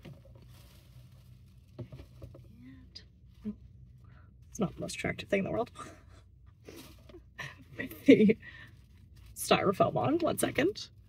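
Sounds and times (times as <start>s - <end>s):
packaging rustling: 0.0s - 2.6s.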